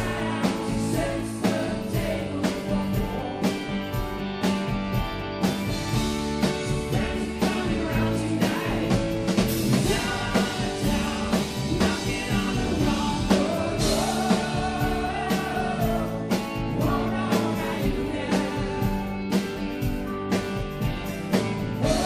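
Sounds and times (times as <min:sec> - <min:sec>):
man singing lead vocal: 0:00.0 - 0:03.8, 0:06.7 - 0:19.4
live rock band playing: 0:00.0 - 0:22.0.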